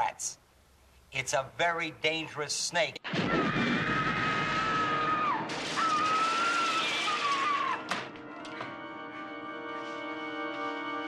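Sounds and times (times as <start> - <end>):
woman screaming: 3.3 - 7.9.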